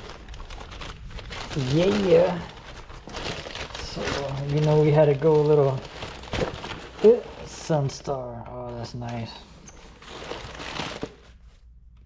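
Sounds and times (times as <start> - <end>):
cardboard packaging rustling: 0.0 - 11.8.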